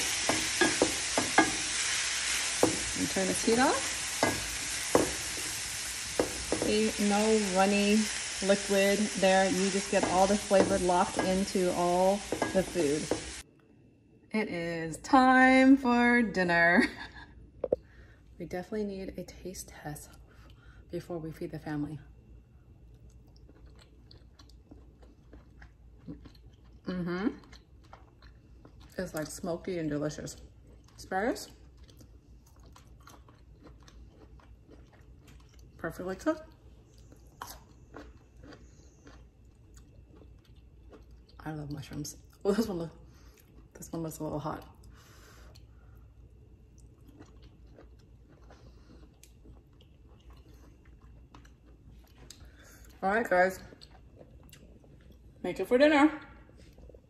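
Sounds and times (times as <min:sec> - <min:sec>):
person chewing: 0:22.9 - 0:29.0, 0:31.6 - 0:35.7, 0:36.8 - 0:41.4, 0:46.7 - 0:53.0, 0:53.7 - 0:55.3.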